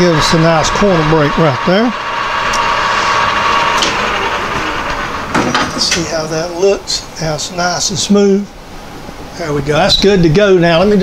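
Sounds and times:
metal lathe whirring: 0:00.0 - 0:07.9
faint high spindle whine: 0:00.0 - 0:11.0.

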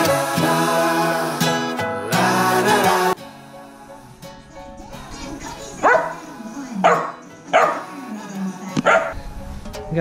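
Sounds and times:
background music: 0:00.0 - 0:10.0
puppy barking: 0:05.8 - 0:06.2, 0:06.8 - 0:07.9, 0:08.8 - 0:09.2.

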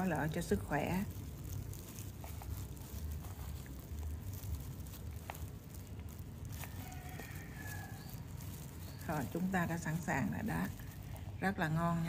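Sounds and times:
hands mixing sticky rice: 0:00.0 - 0:12.0.

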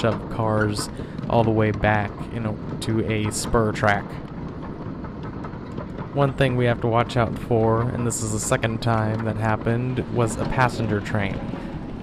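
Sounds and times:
wheels rumbling on rail: 0:00.0 - 0:12.0.

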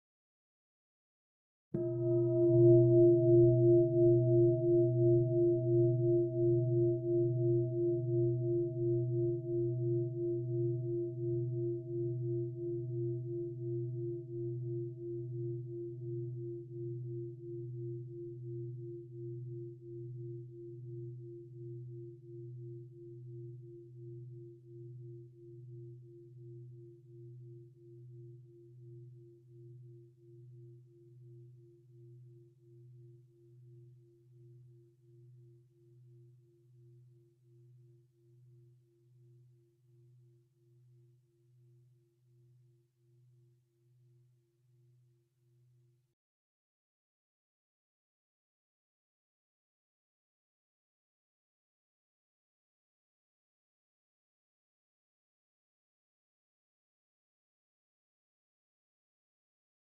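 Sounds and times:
singing bowl ringing: 0:01.8 - 0:12.0.

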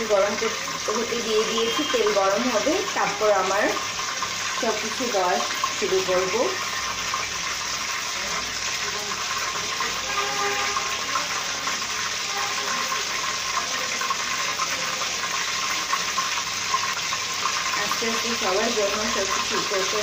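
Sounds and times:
oil sizzling in a wok: 0:00.0 - 0:20.0.

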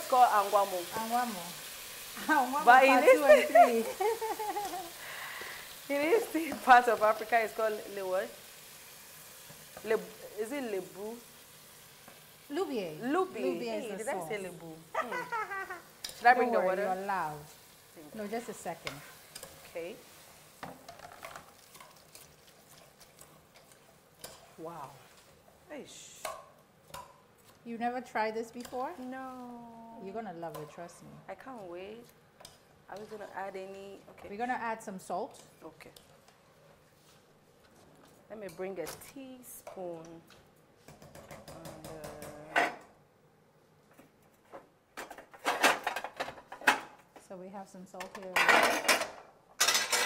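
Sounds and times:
faint sizzle: 0:00.0 - 0:44.3
ladle stirring rice in pot: 0:18.8 - 0:25.5.

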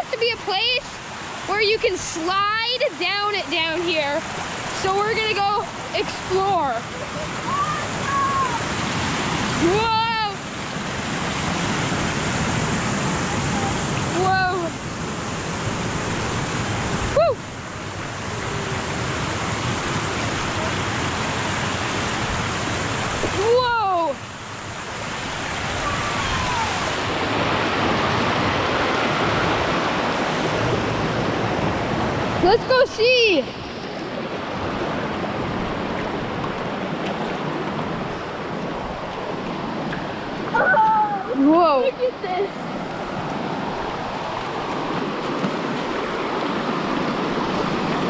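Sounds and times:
river water rushing over rocks: 0:00.0 - 0:48.0
high voice exclamations: 0:07.4 - 0:08.6, 0:40.6 - 0:41.4.

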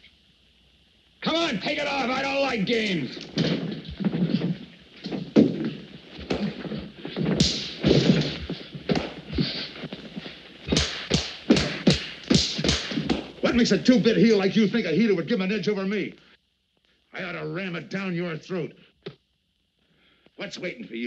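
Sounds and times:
thuds and knocks of scuffling: 0:03.3 - 0:13.4.

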